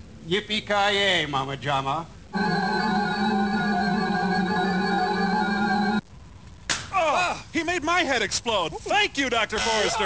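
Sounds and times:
held electronic organ chord: 0:02.3 - 0:06.0.

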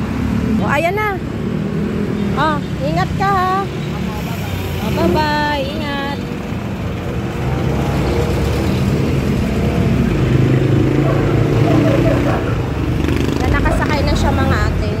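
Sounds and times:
street traffic: 0:00.0 - 0:15.0.

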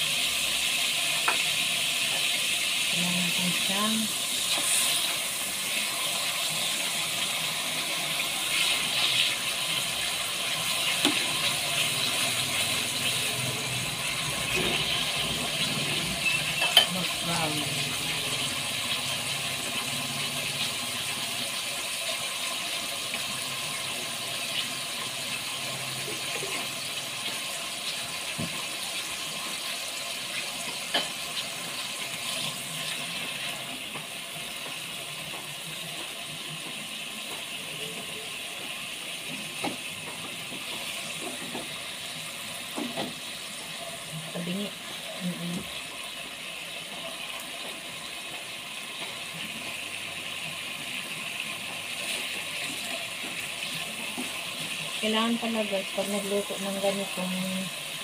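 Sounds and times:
meat sizzling in oil: 0:00.0 - 0:58.0.

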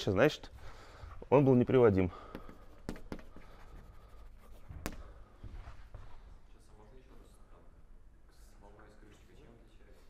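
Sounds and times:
chalk tapping on blackboard: 0:02.3 - 0:05.0
chalk scratching on blackboard: 0:02.4 - 0:04.9.

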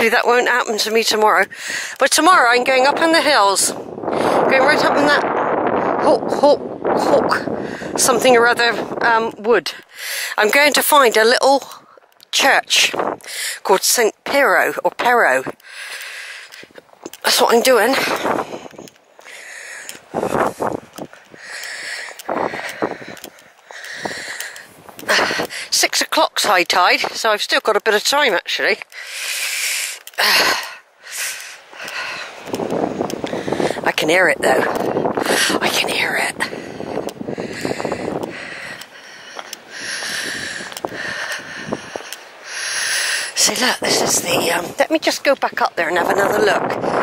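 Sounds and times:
person breathing hard: 0:01.5 - 0:02.0, 0:07.6 - 0:08.0, 0:09.8 - 0:10.4, 0:13.2 - 0:13.6, 0:15.6 - 0:16.8, 0:18.2 - 0:25.7, 0:28.9 - 0:32.6, 0:33.2 - 0:33.8, 0:35.2 - 0:35.6, 0:36.4 - 0:43.4
footsteps crunching on stones: 0:10.6 - 0:42.4.

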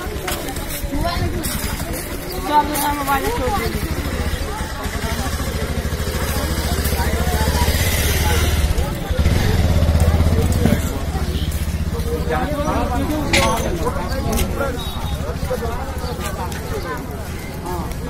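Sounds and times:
crowd voices: 0:00.0 - 0:18.0
engine rumbling: 0:00.0 - 0:18.0.

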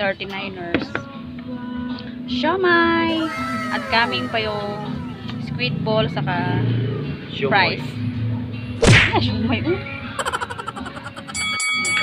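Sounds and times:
sharp whack: 0:08.8 - 0:09.1.

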